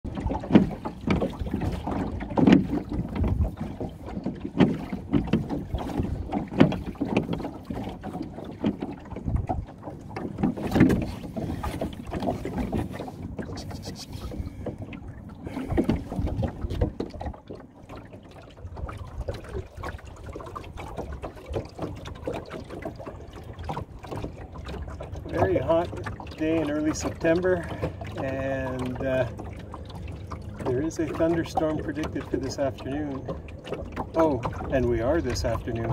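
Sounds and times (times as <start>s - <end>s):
water swishing: 0.0s - 35.9s
wooden oars rowing: 0.0s - 35.9s.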